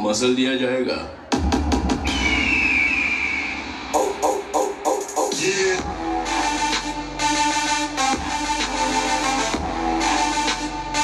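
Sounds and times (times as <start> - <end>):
dance beat: 1.3 - 11.0
whistle tone sliding downward: 2.0 - 3.8.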